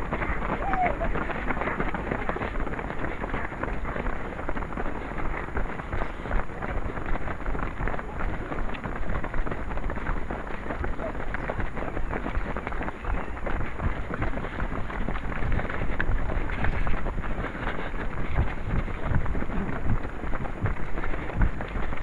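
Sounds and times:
voices: 0.0 - 20.1
runners' footsteps on path: 0.0 - 22.0
wind rumble on microphone: 0.0 - 22.0.

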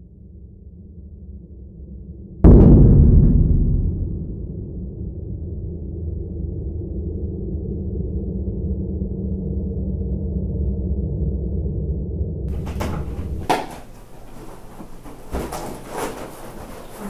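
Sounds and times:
loud cinematic boom: 2.4 - 5.6.

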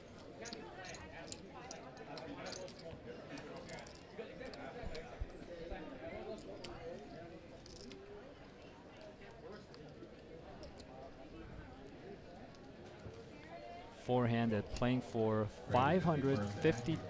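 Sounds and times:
low background voices: 0.0 - 17.0.

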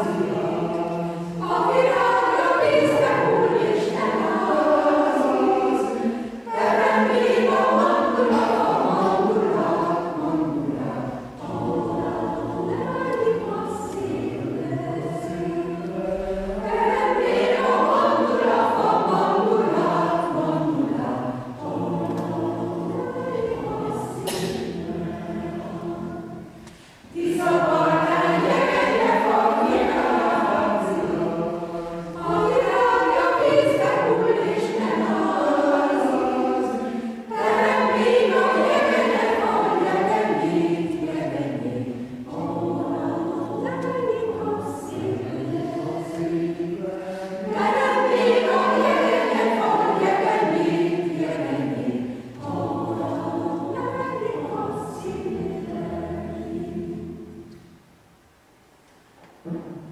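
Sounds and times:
mixed choir singing a cappella: 0.0 - 58.0, 59.3 - 59.9.

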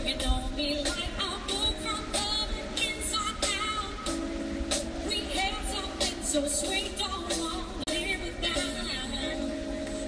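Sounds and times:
woman singing: 0.0 - 4.3, 5.0 - 10.0
live band playing: 0.0 - 10.0.

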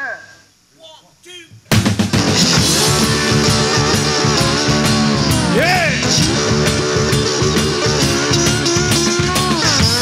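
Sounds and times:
band with drums and electric guitar: 1.6 - 10.0
blues harmonica playing: 2.2 - 10.0.

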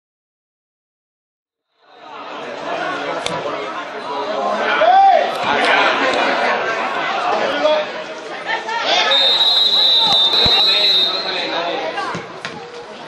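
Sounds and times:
chatter of many voices: 1.8 - 13.0.

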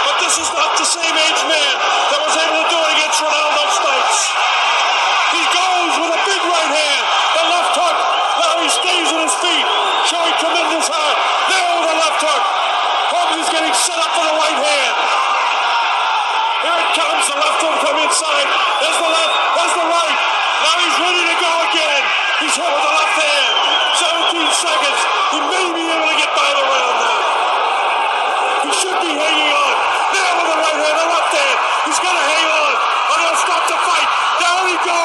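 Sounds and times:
crowd yelling and cheering: 0.0 - 35.0.

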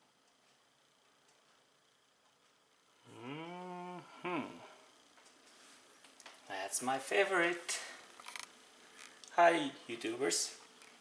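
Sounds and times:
man humming: 3.0 - 5.0.

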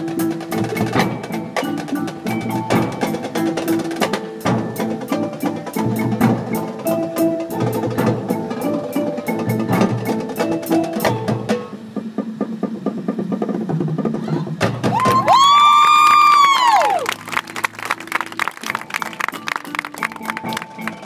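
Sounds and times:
rapid drum and mallet strokes: 0.0 - 15.5, 17.4 - 21.0.

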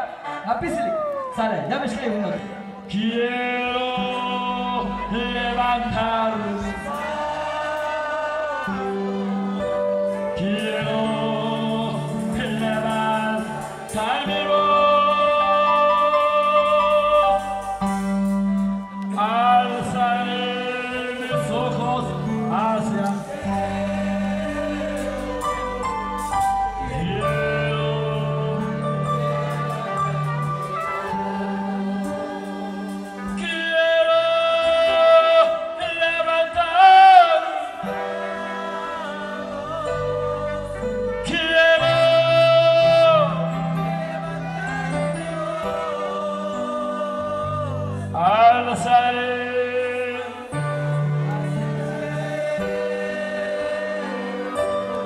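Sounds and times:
keyboard and brass chords: 0.0 - 55.0
voices singing gospel: 2.3 - 55.0.

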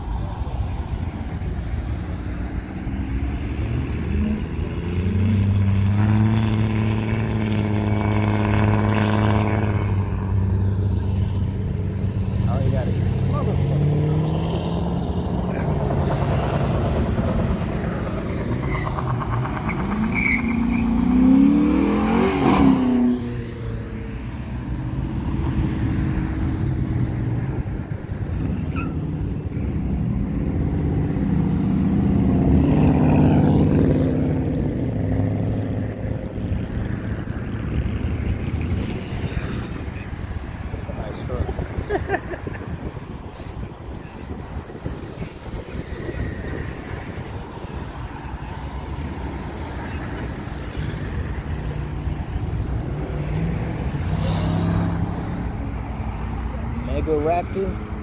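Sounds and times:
car engines droning: 0.0 - 58.0
car accelerating past: 28.4 - 40.0, 48.8 - 56.1.

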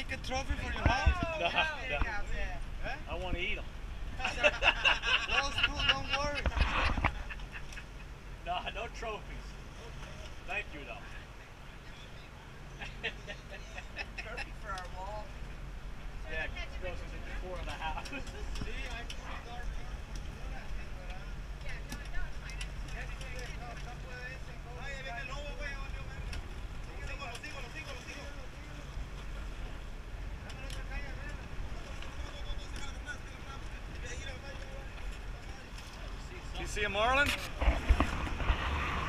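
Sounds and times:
boat engine droning: 0.0 - 39.0
water noise: 0.0 - 39.0
wind: 0.0 - 39.0.

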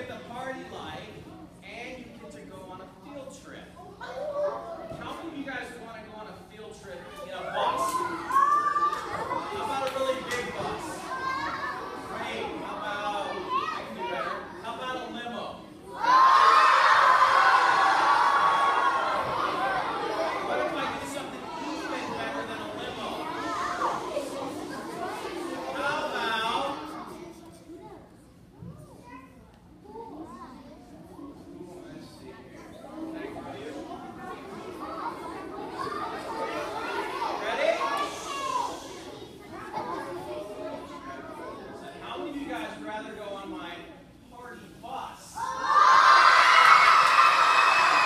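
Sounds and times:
children chattering excitedly: 0.0 - 48.0
children shouting: 7.6 - 12.3, 15.9 - 27.0, 34.4 - 41.8, 45.4 - 48.0.

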